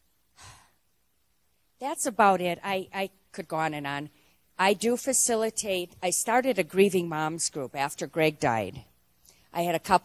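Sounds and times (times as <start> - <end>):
woman speaking: 1.8 - 10.0.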